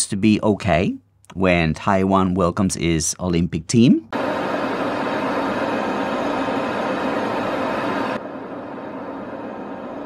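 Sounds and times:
aircraft engines and rushing air: 4.1 - 10.0
cockpit steady noise: 4.1 - 10.0.

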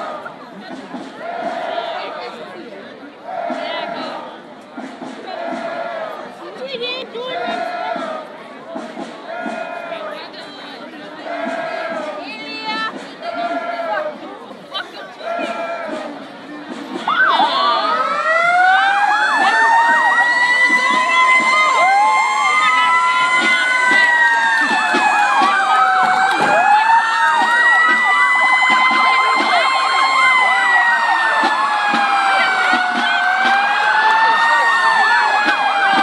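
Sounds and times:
emergency sirens wailing: 17.0 - 36.0.

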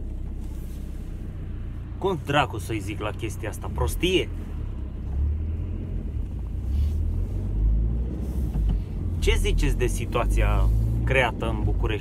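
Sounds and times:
road noise: 0.0 - 12.0
van engine rumble: 0.0 - 12.0.

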